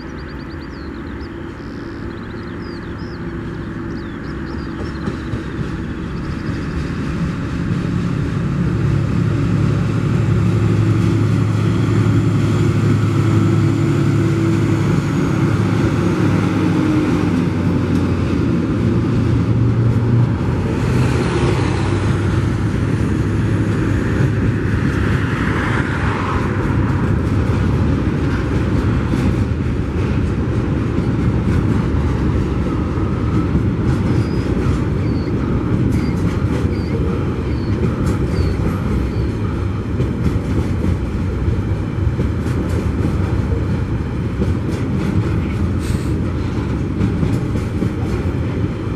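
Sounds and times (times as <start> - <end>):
diesel locomotive engine drone: 0.0 - 48.9
steel wheels rumbling on rail: 0.0 - 48.9.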